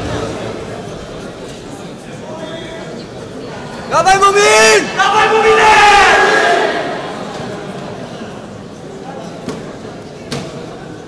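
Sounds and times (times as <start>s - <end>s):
crowd noise: 0.0s - 11.0s
man shouting: 3.9s - 6.6s.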